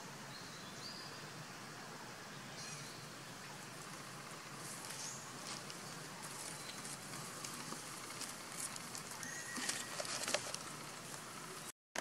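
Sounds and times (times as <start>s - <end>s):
leaves crackling underfoot: 3.4s - 11.7s
animal walking on dry leaves: 3.7s - 11.5s
thin whistle-like call: 9.2s - 9.9s.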